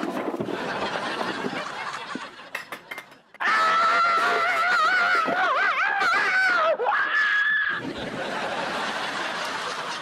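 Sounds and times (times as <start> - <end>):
person screaming: 3.4 - 7.8.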